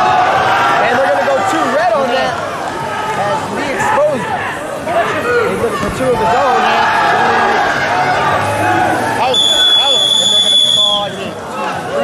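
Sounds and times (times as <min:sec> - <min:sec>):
crowd shouting: 0:00.0 - 0:12.0
referee's whistle blast: 0:09.3 - 0:11.2.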